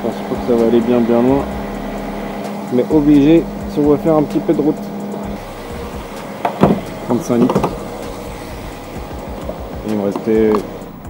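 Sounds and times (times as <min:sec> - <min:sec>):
fuel pump humming: 0:00.0 - 0:11.0.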